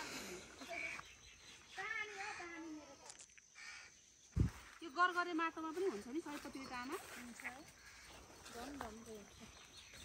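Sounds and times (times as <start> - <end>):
crow cawing: 3.6 - 4.0.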